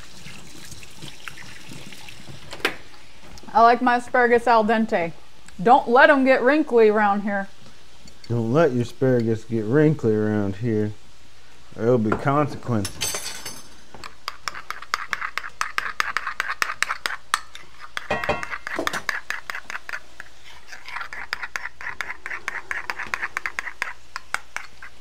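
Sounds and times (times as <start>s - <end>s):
food sizzling in pans: 0.0s - 12.8s, 13.5s - 25.0s.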